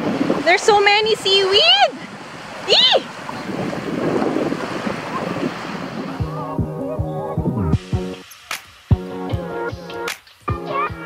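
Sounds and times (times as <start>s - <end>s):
waves washing on beach: 0.0s - 6.8s, 7.8s - 10.5s
wind buffeting microphone: 0.0s - 8.2s
background music: 6.2s - 11.0s.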